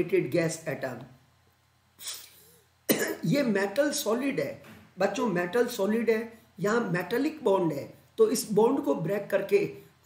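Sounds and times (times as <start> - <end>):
man speaking: 0.0 - 1.2, 3.0 - 9.9
man coughing: 2.0 - 3.4.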